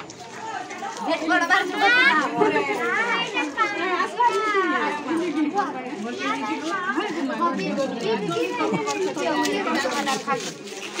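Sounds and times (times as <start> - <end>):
women and children chattering: 0.0 - 11.0.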